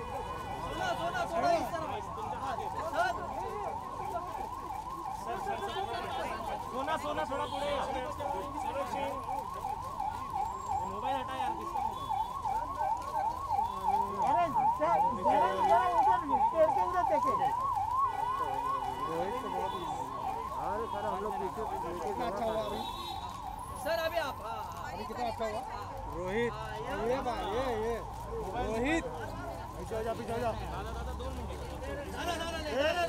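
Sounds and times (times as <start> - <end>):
electronic siren yelping: 0.0 - 30.7
murmur of crowd voices: 0.0 - 33.0.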